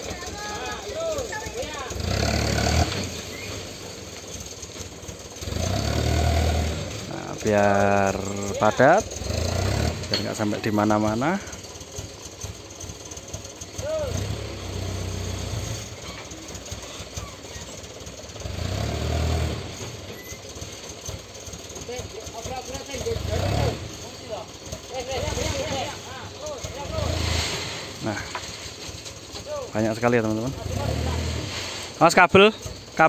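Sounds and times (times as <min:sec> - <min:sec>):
indistinct voices: 0:00.0 - 0:03.5, 0:06.8 - 0:11.7
truck engine revving: 0:00.0 - 0:33.0.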